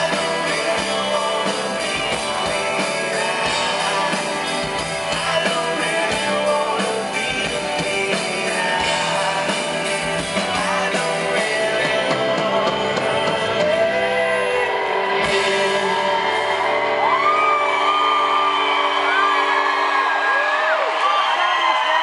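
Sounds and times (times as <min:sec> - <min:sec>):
rock band chord ringing: 0:00.0 - 0:20.0
crowd cheering and whooping: 0:13.7 - 0:22.0.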